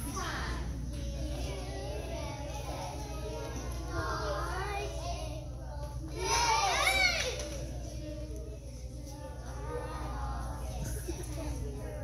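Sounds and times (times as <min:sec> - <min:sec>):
children singing with music: 0:00.0 - 0:12.0.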